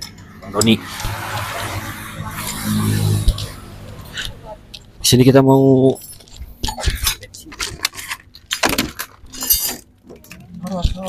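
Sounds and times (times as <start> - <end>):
metal parts clinking: 6.0 - 11.0.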